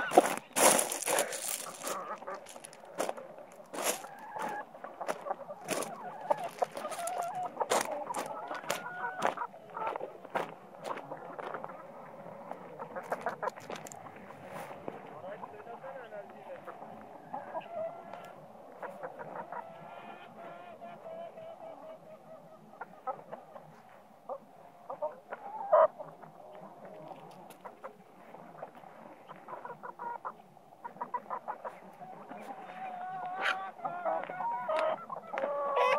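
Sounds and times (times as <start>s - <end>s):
chickens clucking: 0.0s - 35.9s.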